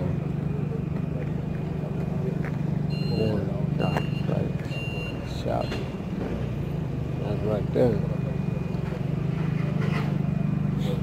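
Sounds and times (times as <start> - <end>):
vehicle engine idling: 0.0 - 11.0
short high beeps: 2.9 - 5.9.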